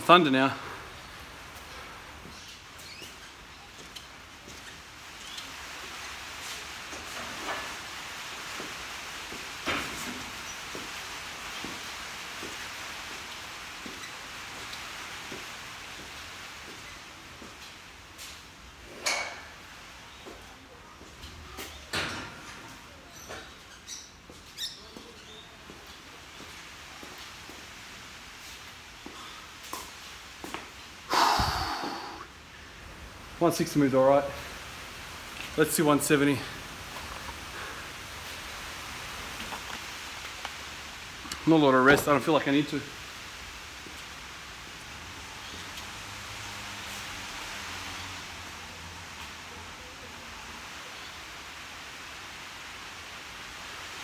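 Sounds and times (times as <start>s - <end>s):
steady hiss: 0.0s - 54.0s.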